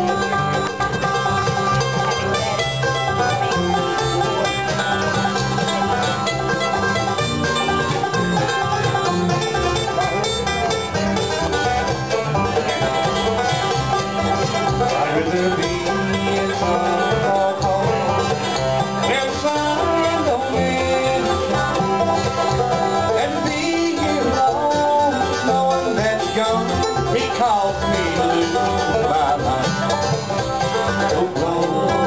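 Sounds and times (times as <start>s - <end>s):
banjo: 0.0s - 32.0s
bluegrass band playing: 0.0s - 32.0s.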